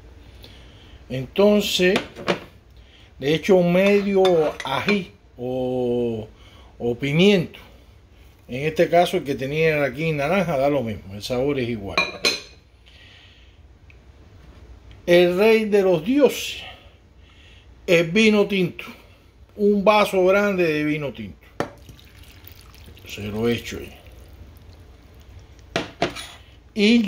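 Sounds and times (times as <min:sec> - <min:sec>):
faint steady hiss: 0:00.0 - 0:27.0.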